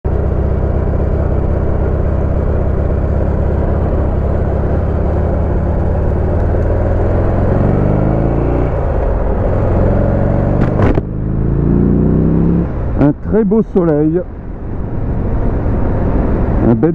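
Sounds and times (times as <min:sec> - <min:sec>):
motorcycle engine rumble: 0:00.1 - 0:16.9.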